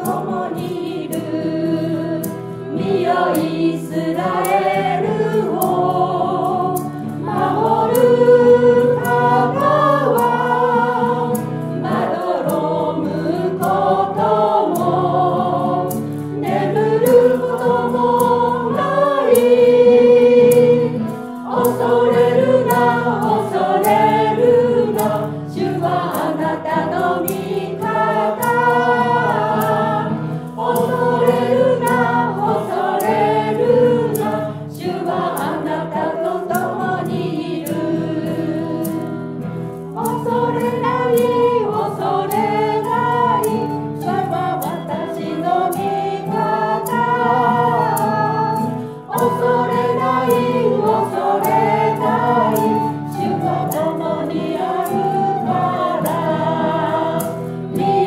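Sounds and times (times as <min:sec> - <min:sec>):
choir singing: 0:00.0 - 0:58.0
guitar: 0:00.0 - 0:58.0
maracas shaken: 0:00.0 - 0:58.0.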